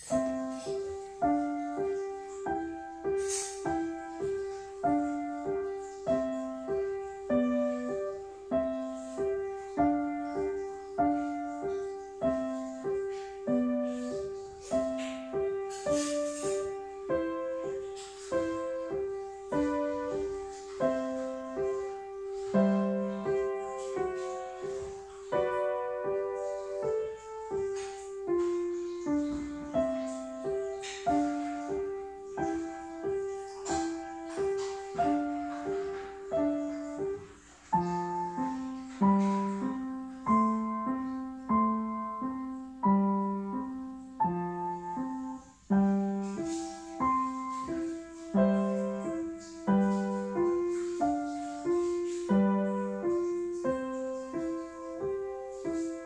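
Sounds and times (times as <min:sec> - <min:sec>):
upright piano piece: 0:00.0 - 0:56.0.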